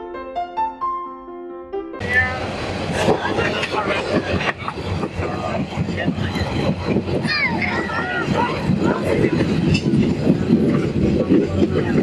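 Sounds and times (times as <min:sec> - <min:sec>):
people talking: 0:02.0 - 0:12.0
train running noise: 0:02.0 - 0:12.0.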